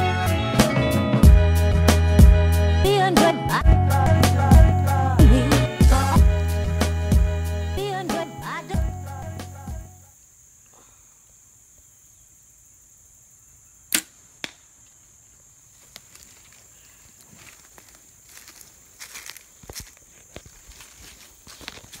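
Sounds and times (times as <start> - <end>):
arrow striking target: 13.9 - 14.6
bow string snap: 13.9 - 14.7
footsteps in dry grass: 15.6 - 22.0.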